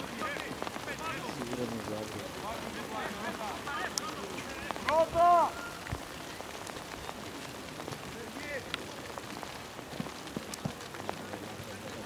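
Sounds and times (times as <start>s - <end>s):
loud shout: 4.8s - 5.8s.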